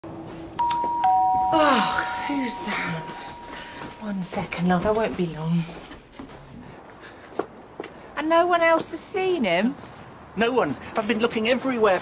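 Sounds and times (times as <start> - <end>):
two-tone doorbell chime: 0.6 - 4.0.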